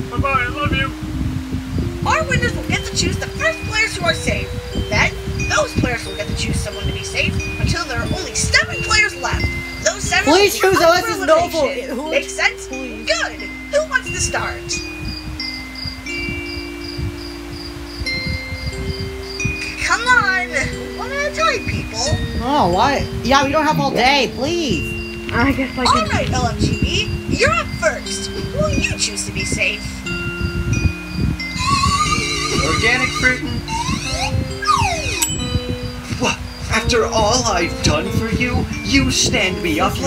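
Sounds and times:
light background music: 0:00.0 - 0:40.0
pulsing high tone: 0:00.6 - 0:40.0
chime-like held tones: 0:00.8 - 0:40.0
falling whistle glide: 0:31.5 - 0:35.5
cartoon rising chirp: 0:31.5 - 0:35.6.

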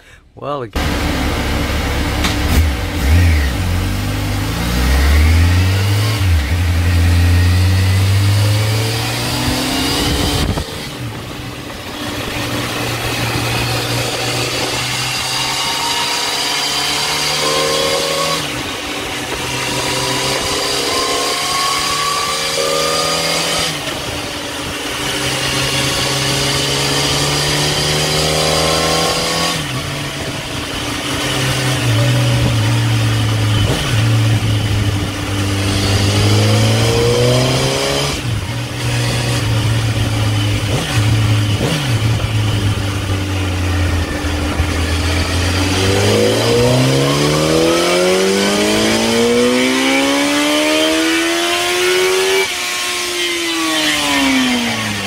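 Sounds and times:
motorcycle engine revving: 0:00.8 - 0:55.0.

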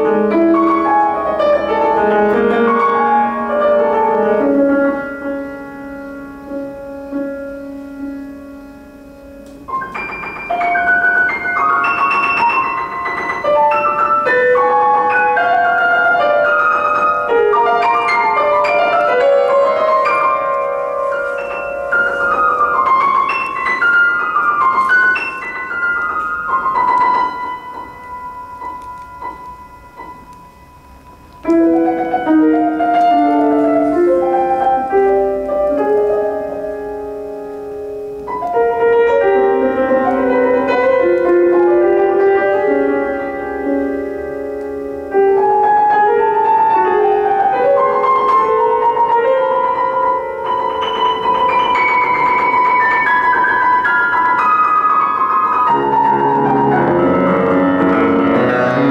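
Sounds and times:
piano playing high notes: 0:00.0 - 0:58.9.

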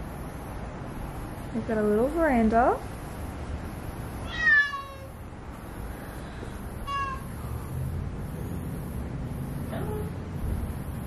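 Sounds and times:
kitten meowing: 0:04.2 - 0:05.2, 0:06.8 - 0:07.3.

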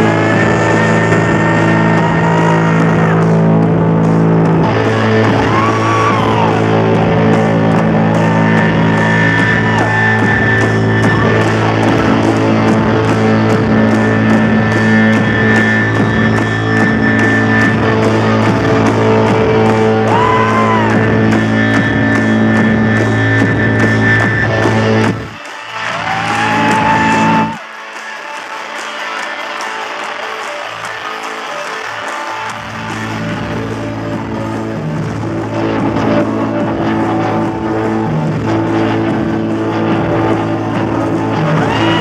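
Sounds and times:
electric guitar: 0:00.0 - 0:42.0.

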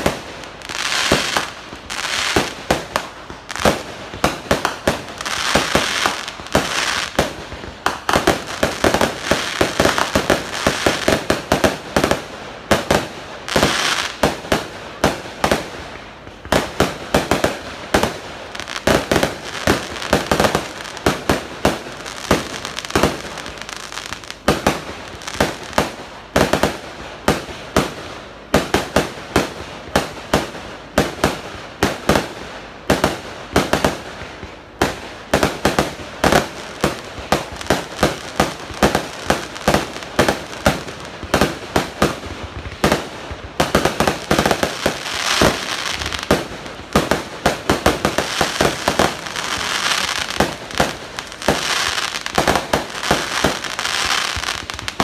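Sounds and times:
fireworks bangs and crackles: 0:00.0 - 0:55.0.

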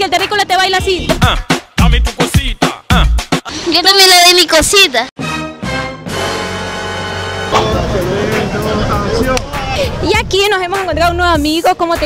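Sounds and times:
steady traffic noise: 0:06.7 - 0:10.7
indistinct voices: 0:07.5 - 0:11.2.

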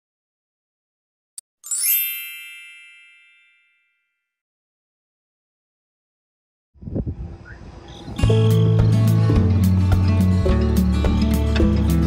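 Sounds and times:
bright bell-like ding: 0:01.7 - 0:04.2.

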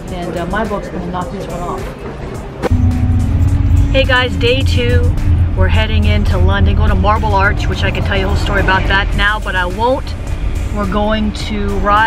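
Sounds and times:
car engine and road noise: 0:02.4 - 0:12.0.

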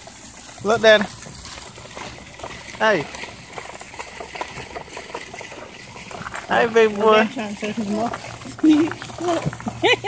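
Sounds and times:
stroller wheels rolling: 0:00.0 - 0:10.0
small clicks and rattles: 0:00.4 - 0:10.0.

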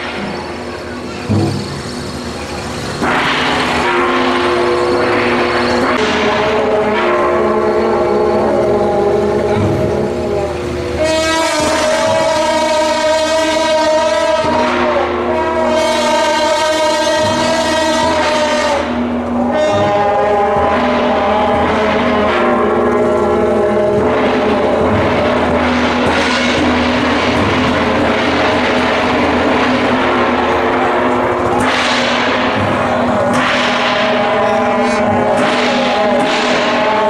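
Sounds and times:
brass horns droning: 0:00.0 - 0:37.0.

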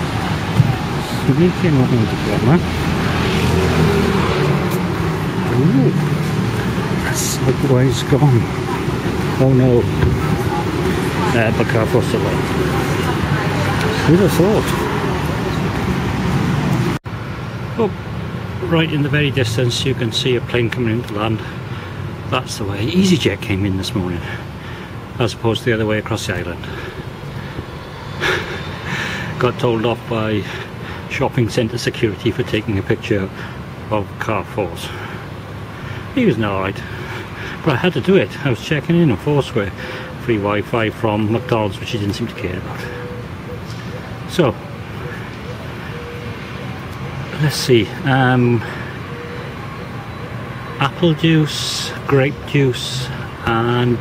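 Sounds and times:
low rumble of street traffic: 0:00.0 - 0:54.0
road noise: 0:00.0 - 0:54.0.

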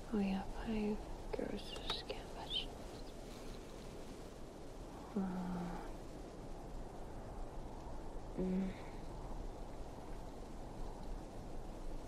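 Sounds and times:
low background hiss: 0:00.0 - 0:12.0
woman whispering: 0:00.1 - 0:02.8, 0:05.1 - 0:06.0, 0:08.4 - 0:09.0
faint clicks: 0:01.3 - 0:03.8, 0:09.7 - 0:11.3.

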